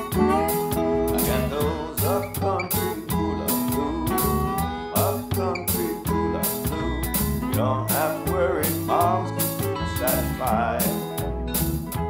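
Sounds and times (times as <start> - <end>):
slide guitar: 0.0 - 12.0
steady beat: 0.0 - 12.0
upright bass line: 0.0 - 12.0.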